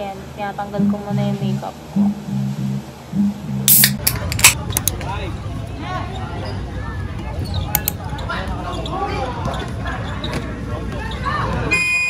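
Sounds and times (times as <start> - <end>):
spectators talking: 0.0 - 11.9.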